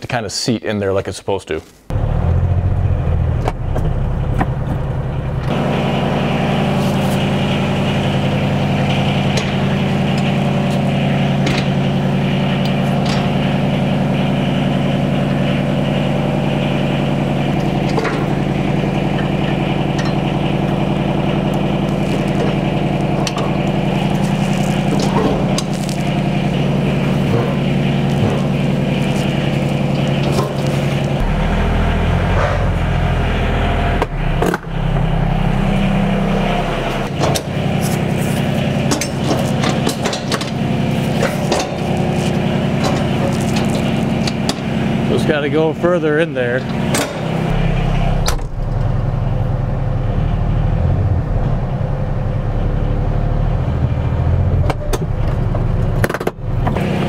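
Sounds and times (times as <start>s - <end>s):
diesel engine idling: 1.9s - 57.0s
metal clanks and knocks: 8.3s - 13.6s, 17.5s - 31.3s, 37.0s - 44.9s, 46.6s - 47.6s.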